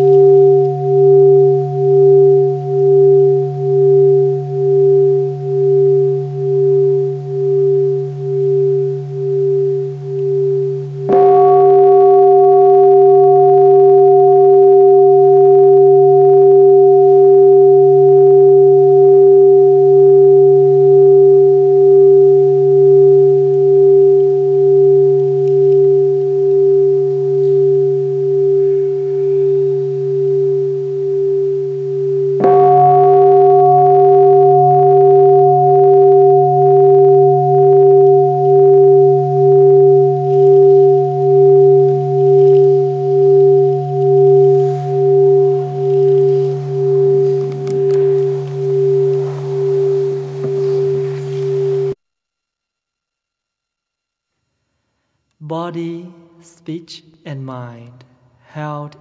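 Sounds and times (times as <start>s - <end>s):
bowl bell ringing: 0.0s - 52.0s.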